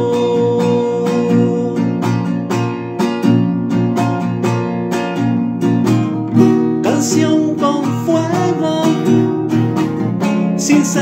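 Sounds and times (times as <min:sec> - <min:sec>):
man singing held note: 0:00.0 - 0:01.9
classical guitar strummed: 0:00.0 - 0:11.0.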